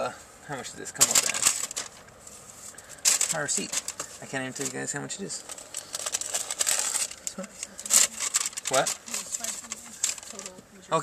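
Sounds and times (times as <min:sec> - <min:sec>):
faint rustling: 0:01.0 - 0:10.7.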